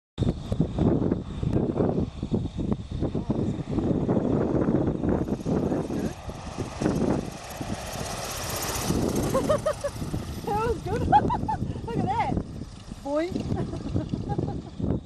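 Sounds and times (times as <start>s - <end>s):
propeller plane engine: 0.2s - 15.0s.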